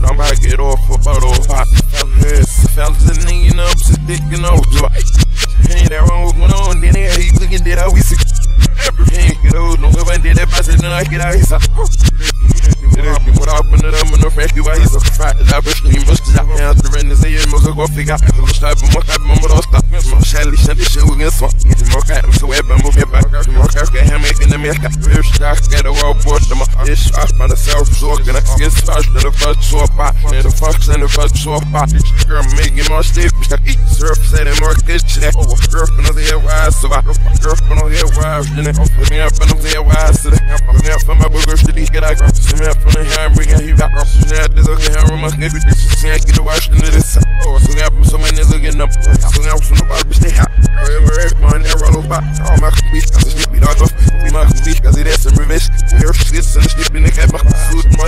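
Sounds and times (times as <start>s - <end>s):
deep bass line: 0.0s - 58.0s
reversed rap vocals: 0.0s - 58.0s.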